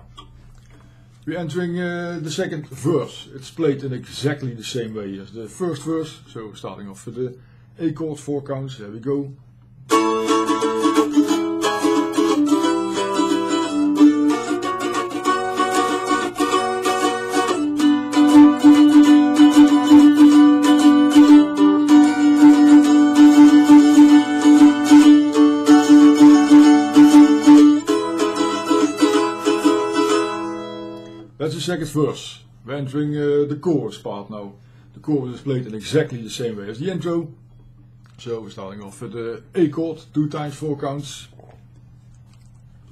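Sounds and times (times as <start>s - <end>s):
mandolin strumming chords: 9.9s - 31.4s.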